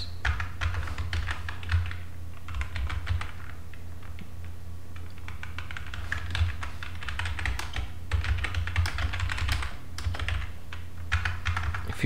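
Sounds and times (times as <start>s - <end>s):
steady low hum: 0.0s - 12.0s
computer keyboard typing: 0.2s - 4.3s, 5.0s - 12.0s.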